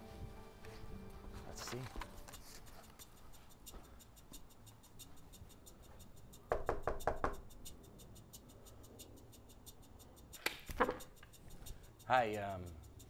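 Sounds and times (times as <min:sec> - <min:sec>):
soft music with ticking beat: 0:00.0 - 0:13.0
knocking on front door: 0:06.5 - 0:07.4.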